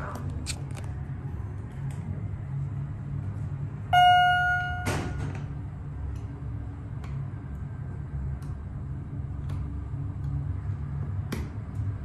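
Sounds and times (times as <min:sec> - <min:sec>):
elevator hum and rumble: 0:00.0 - 0:12.0.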